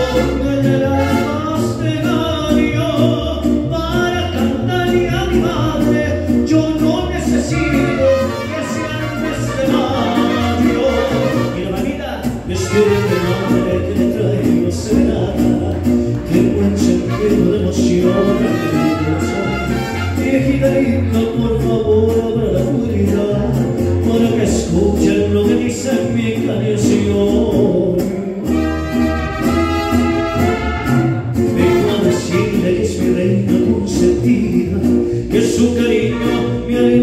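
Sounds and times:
man singing into a microphone: 0.0 - 37.0
mariachi band playing: 0.0 - 37.0.

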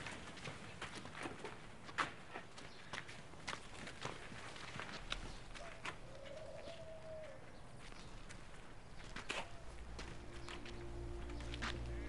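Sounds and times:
footsteps on packed earth: 0.0 - 12.0
outdoor background hiss: 7.4 - 12.0.

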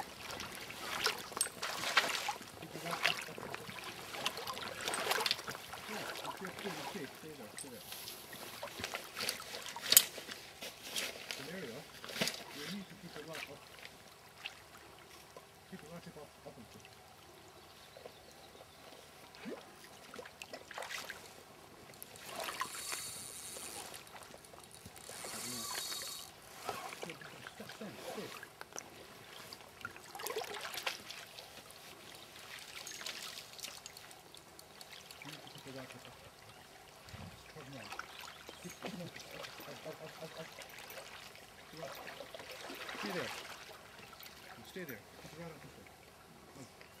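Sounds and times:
river water lapping and trickling: 0.0 - 47.0
short hissing bursts: 22.6 - 23.8, 25.2 - 26.3.

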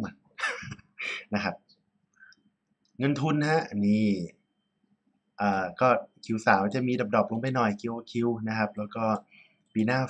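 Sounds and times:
man talking: 0.0 - 1.8, 3.0 - 4.4, 5.4 - 10.0.

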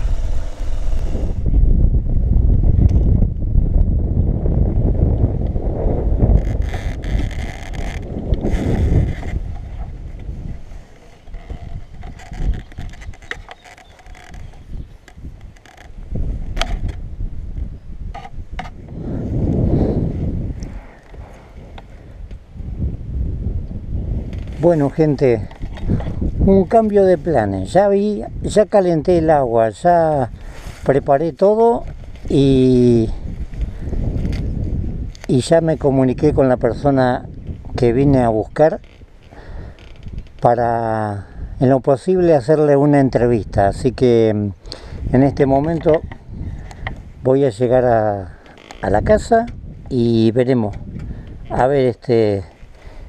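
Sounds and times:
motorcycle rumble: 0.0 - 26.7
wind buffeting microphone: 0.0 - 53.0
camera handling clicks and knocks: 11.2 - 17.0.

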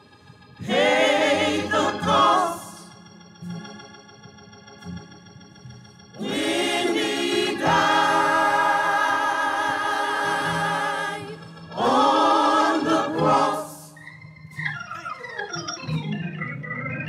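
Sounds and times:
organ chord: 0.0 - 17.0
gospel choir singing: 0.6 - 3.0, 6.2 - 14.0.

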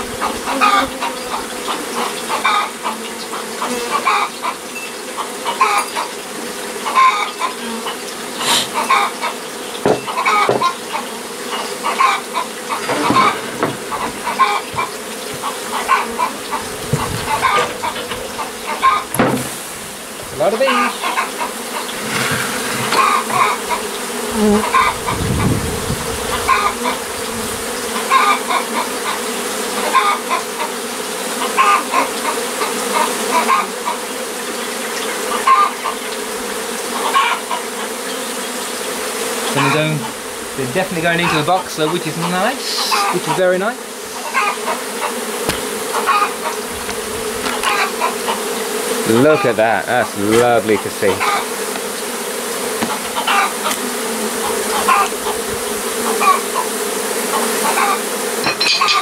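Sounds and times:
bees buzzing: 0.0 - 59.0
hen clucking: 0.2 - 6.1, 6.8 - 19.4, 20.4 - 25.6, 26.2 - 27.2, 27.9 - 30.8, 31.4 - 34.1, 34.8 - 36.3, 36.9 - 38.0, 39.4 - 59.0.

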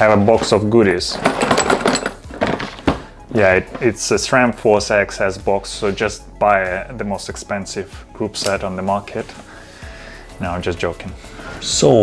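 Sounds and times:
small parts clattering in a box: 0.0 - 3.1.

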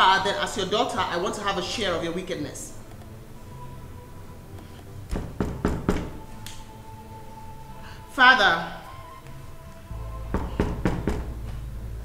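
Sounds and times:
soft background music: 0.0 - 12.0
knuckles knocking on wooden door: 5.1 - 6.2, 10.3 - 11.4.

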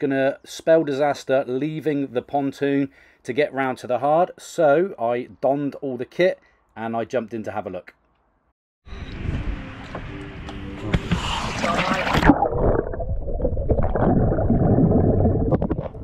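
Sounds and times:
underwater rumble and bubbling: 11.1 - 16.0
water splashing and churning: 11.2 - 16.0.

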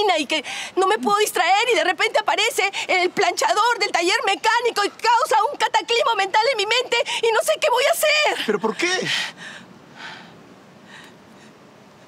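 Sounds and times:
person breathing: 8.9 - 11.6.

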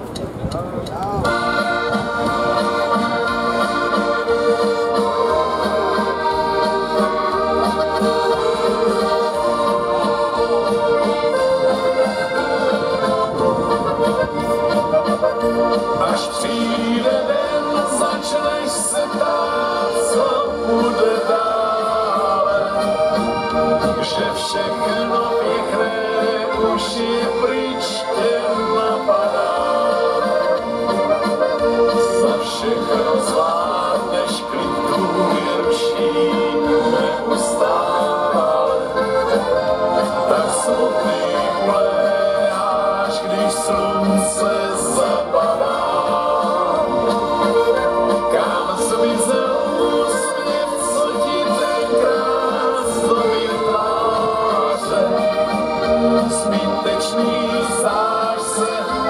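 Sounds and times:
live accordion band music: 1.1 - 59.0.

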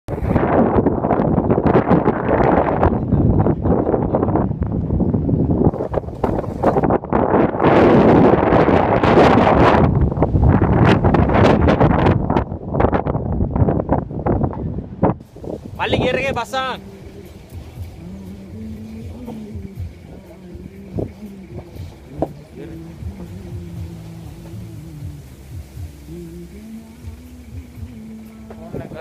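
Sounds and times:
wind buffeting microphone: 0.1 - 29.0.

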